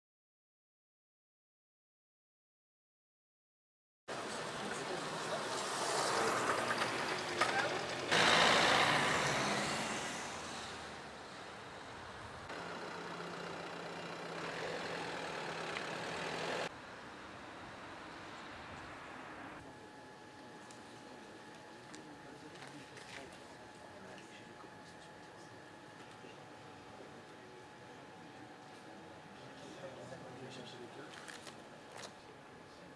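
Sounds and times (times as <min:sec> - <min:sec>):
vehicle noise: 0:04.1 - 0:19.7.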